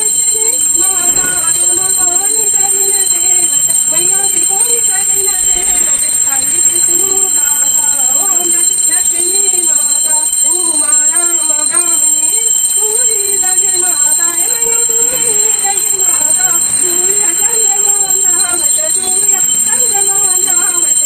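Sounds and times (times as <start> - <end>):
steady high-pitched tone: 0.0 - 21.0
voices singing a devotional song: 0.0 - 21.0.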